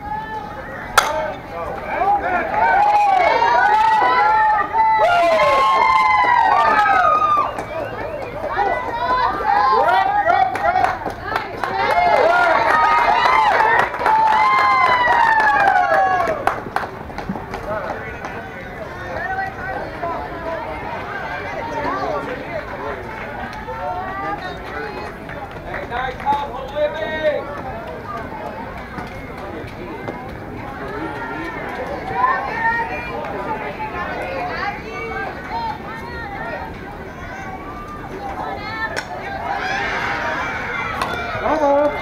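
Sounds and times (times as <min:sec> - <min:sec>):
crowd yelling and cheering: 0:00.0 - 0:42.0
bat hitting ball crack: 0:00.9 - 0:01.4.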